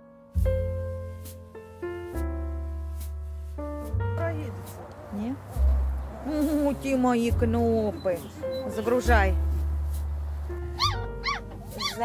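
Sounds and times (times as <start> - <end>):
puppies whining: 7.9 - 9.0, 10.6 - 12.0.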